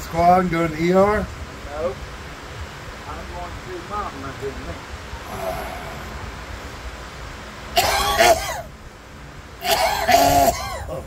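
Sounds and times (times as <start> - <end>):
man coughing: 7.8 - 8.7, 9.6 - 11.0.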